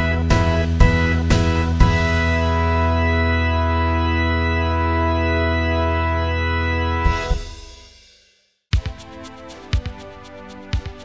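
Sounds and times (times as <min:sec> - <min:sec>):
sustained music chord: 0:00.0 - 0:07.8.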